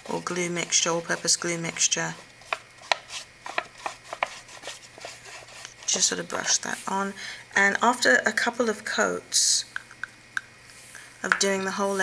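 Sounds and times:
paintbrush dabbing on paper: 0:00.0 - 0:06.8
bristles scratching paper: 0:00.1 - 0:06.2.

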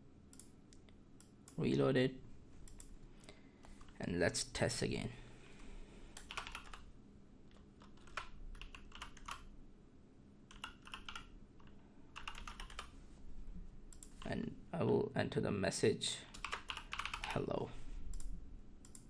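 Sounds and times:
typing on computer keyboard: 0:06.2 - 0:06.8, 0:07.5 - 0:09.5, 0:10.5 - 0:12.9, 0:16.3 - 0:17.4.

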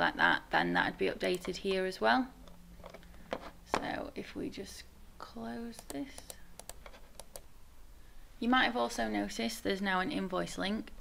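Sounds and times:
low room hum: 0:00.0 - 0:11.0
computer mouse and key clicks: 0:05.7 - 0:07.5.

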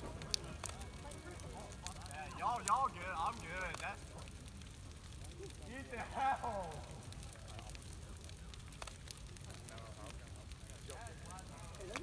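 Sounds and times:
bonfire rumbling: 0:00.0 - 0:12.0
faint murmuring voices: 0:00.0 - 0:12.0
fire crackling and popping: 0:00.0 - 0:12.0.

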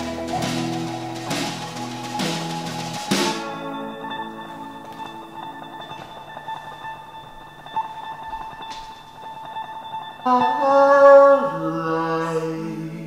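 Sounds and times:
held ringing tones: 0:00.0 - 0:13.0
plucked guitar notes: 0:00.0 - 0:13.0.

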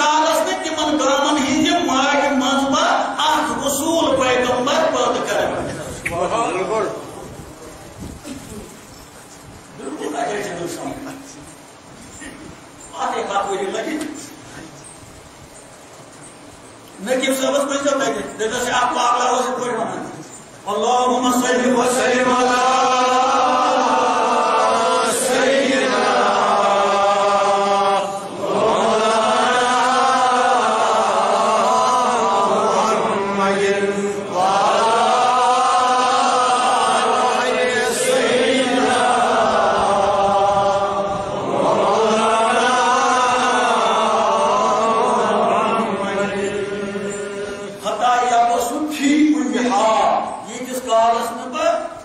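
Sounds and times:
person chanting melodically: 0:17.1 - 0:51.6.

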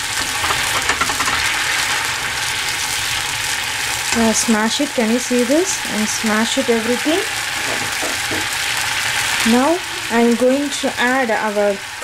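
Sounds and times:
garlic sizzling in a pan: 0:00.0 - 0:12.0.

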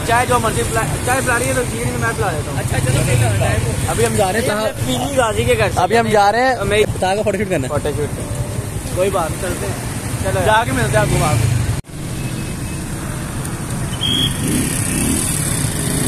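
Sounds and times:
voices: 0:00.0 - 0:11.6
cars and motorcycles passing: 0:00.0 - 0:16.0.

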